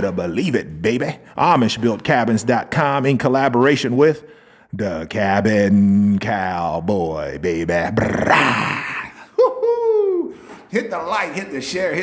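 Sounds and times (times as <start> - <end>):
man's hoarse shout: 8.2 - 9.2.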